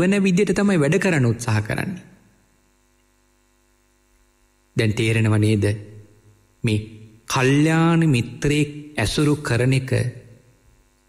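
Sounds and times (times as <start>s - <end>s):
man speaking: 0.0s - 2.2s, 4.8s - 10.4s
faint steady hum: 0.0s - 11.0s.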